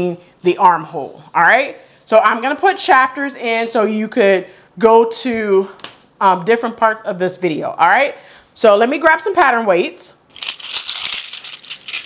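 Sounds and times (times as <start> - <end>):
metal coins jingling: 10.3 - 12.0.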